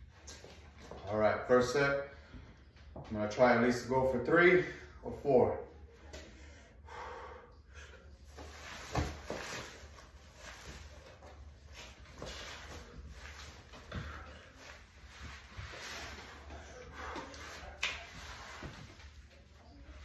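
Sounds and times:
man breathing hard: 0:06.2 - 0:08.2.

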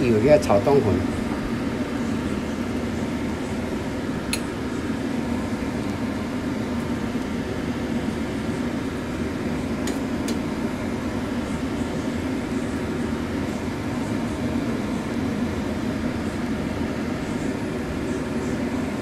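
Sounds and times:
stove rushing hum: 0:00.0 - 0:19.0.

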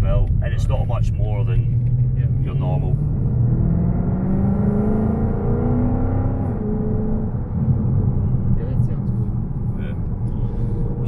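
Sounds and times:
car engine revving: 0:00.0 - 0:11.0
low road rumble: 0:00.0 - 0:11.0.

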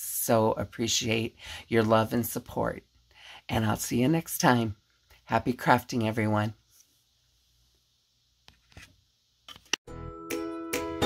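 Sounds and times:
music: 0:09.9 - 0:11.0.

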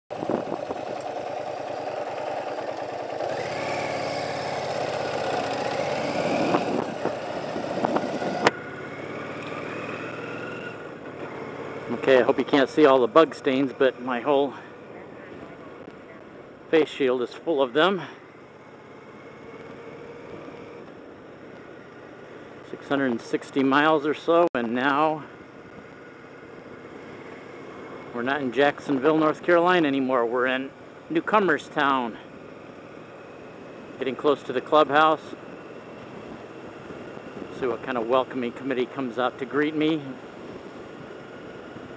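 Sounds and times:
motorcycle engine revving: 0:00.1 - 0:24.2, 0:24.8 - 0:41.9.

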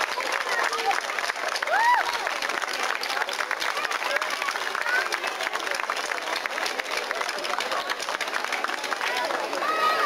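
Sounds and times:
crowd talking and calling out: 0:00.0 - 0:10.0
scattered clapping: 0:00.0 - 0:10.0.

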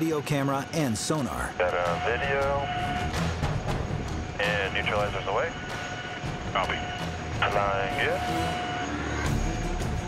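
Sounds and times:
helicopter cabin hum: 0:00.0 - 0:10.0.

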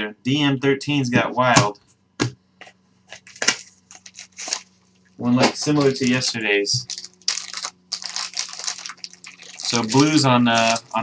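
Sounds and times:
cards rustling and clicking: 0:05.4 - 0:11.0.

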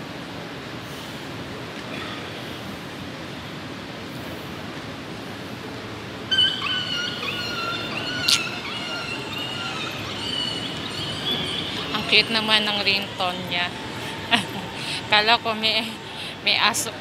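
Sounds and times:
station rumble: 0:05.0 - 0:17.0
phone ringtone melody: 0:06.3 - 0:14.8.

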